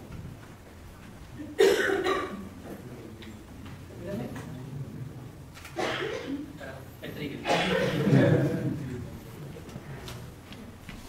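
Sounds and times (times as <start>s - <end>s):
low room noise: 0.0s - 11.0s
person coughing: 1.5s - 2.5s, 5.8s - 6.4s, 7.4s - 8.3s.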